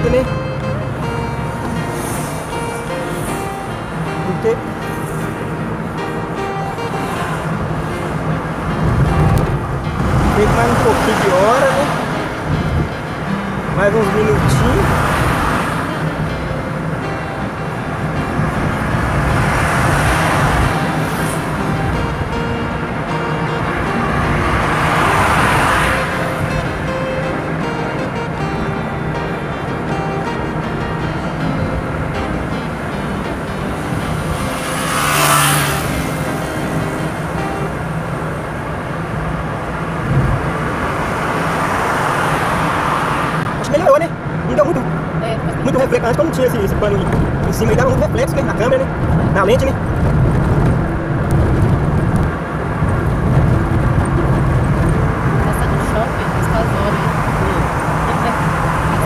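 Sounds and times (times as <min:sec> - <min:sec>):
car road and engine noise: 0:00.0 - 0:59.0
passing traffic rushing: 0:00.0 - 0:59.0.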